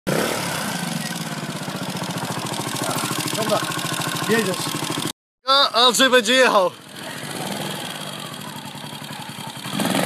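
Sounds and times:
motorcycle engine idling: 0:00.3 - 0:05.1, 0:05.7 - 0:10.0.

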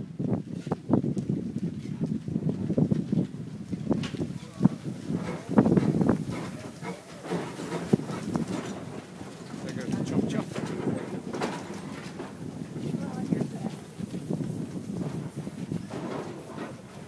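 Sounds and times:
steam locomotive moving slowly: 0:00.0 - 0:17.0
clanks from running gear: 0:00.6 - 0:17.0.

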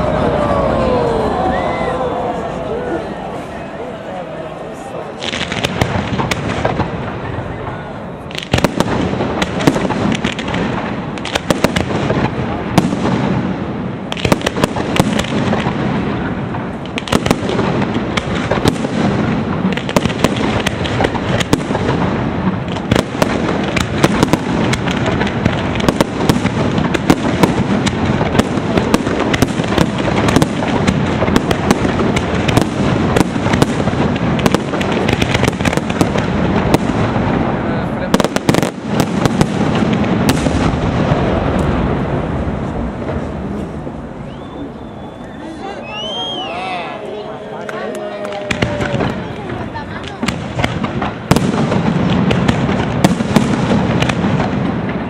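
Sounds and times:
fireworks bangs: 0:00.0 - 0:55.0
fireworks crackling: 0:00.0 - 0:55.0.

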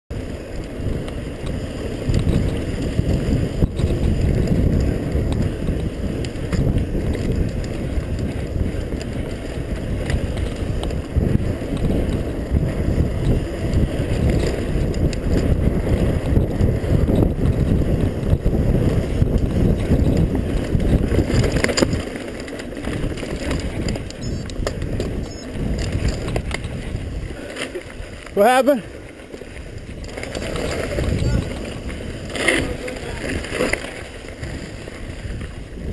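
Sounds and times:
mountain bike rattling over dirt: 0:00.1 - 0:35.9
wind buffeting microphone: 0:00.1 - 0:35.9.

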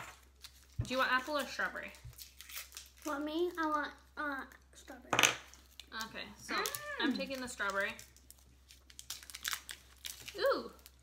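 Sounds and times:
plastic candy wrappers crinkling: 0:00.0 - 0:11.0.

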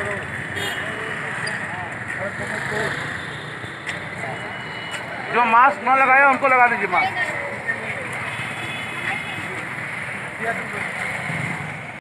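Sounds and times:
passing traffic hum: 0:00.0 - 0:12.0.

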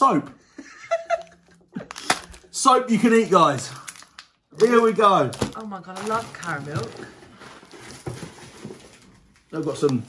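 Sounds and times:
snack packaging rustling: 0:01.8 - 0:10.0
cardboard box rummaging: 0:05.3 - 0:09.1.

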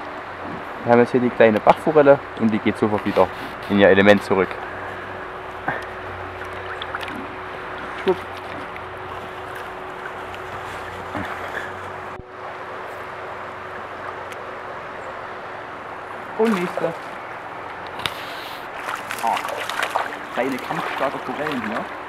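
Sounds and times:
stream flowing over stones: 0:00.1 - 0:22.0.

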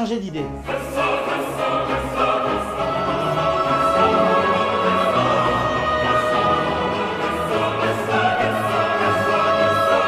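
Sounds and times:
choir singing sustained notes: 0:00.6 - 0:10.0.

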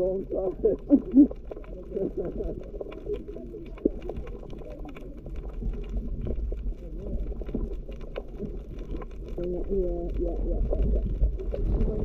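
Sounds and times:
faint clicks: 0:00.0 - 0:12.0
underwater low rumble: 0:00.0 - 0:12.0.

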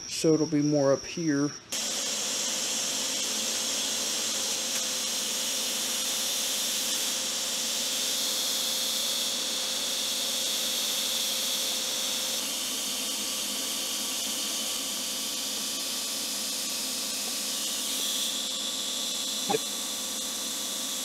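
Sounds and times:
welding arc hissing: 0:01.2 - 0:21.0.

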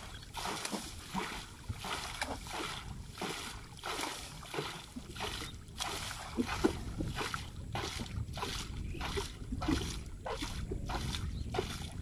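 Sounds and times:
water splashes: 0:00.0 - 0:12.0.

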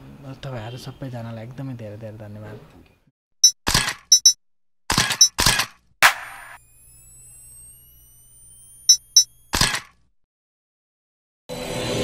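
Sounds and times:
quick sharp clicks: 0:03.4 - 0:06.6.

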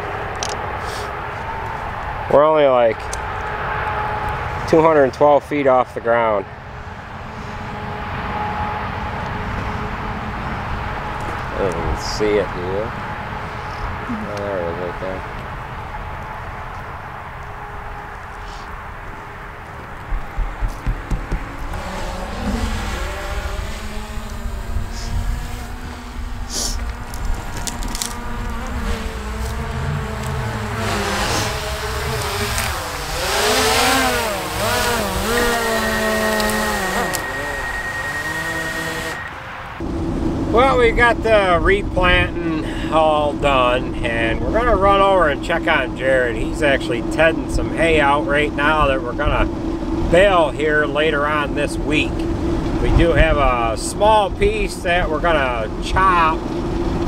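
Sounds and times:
drone propellers whining: 0:06.6 - 0:57.0.

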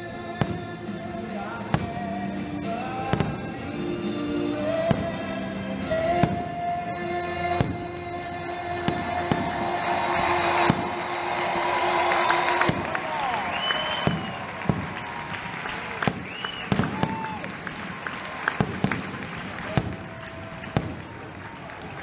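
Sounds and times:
steady music tones: 0:00.0 - 0:15.0
crowd voices: 0:00.0 - 0:22.0
fireworks bangs: 0:00.3 - 0:22.0.

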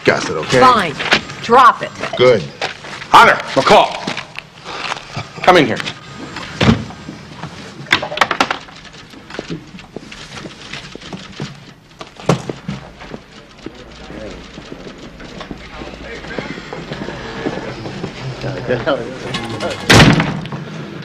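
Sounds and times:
background office chatter: 0:08.6 - 0:20.2
scattered knocks: 0:10.5 - 0:17.1
loud sharp thud: 0:19.9 - 0:20.4.

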